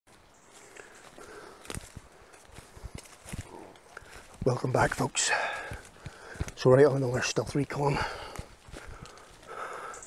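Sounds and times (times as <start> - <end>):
footsteps through undergrowth: 0.1 - 10.0
leaves and branches rustling: 0.1 - 10.0.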